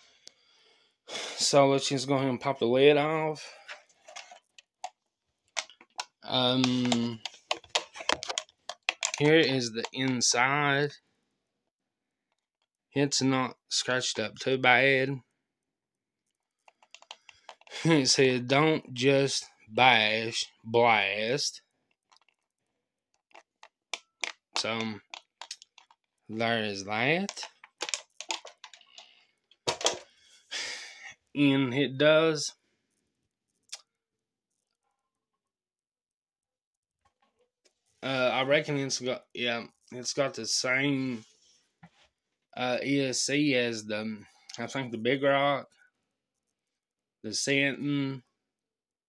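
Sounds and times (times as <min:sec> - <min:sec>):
plastic clicks and ticks of handling: 0:04.0 - 0:10.2, 0:16.6 - 0:17.8, 0:23.2 - 0:26.1, 0:27.2 - 0:30.1.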